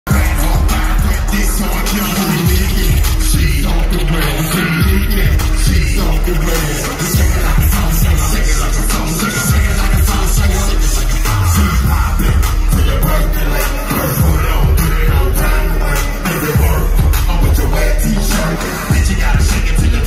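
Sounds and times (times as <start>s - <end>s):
live hip hop music: 0.0s - 20.0s.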